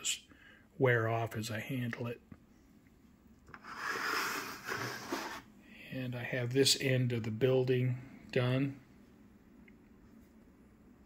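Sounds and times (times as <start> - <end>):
plastic rustling scrape on paper: 3.5 - 5.5.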